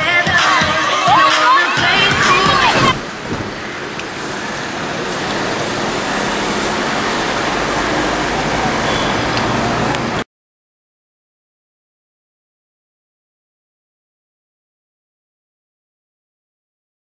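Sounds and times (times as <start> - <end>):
children shouting and cheering: 0.0 - 3.0
road traffic noise: 0.0 - 10.3.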